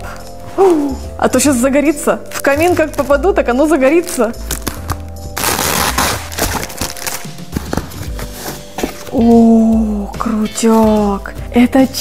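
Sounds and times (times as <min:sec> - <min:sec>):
bubble wrap crackling: 0:00.0 - 0:09.6.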